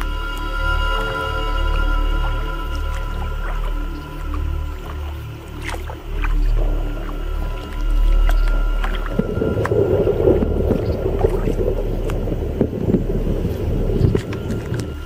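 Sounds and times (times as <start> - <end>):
dark droning synth music: 0.0 - 15.0
rough noisy layer with clicks: 5.6 - 15.0.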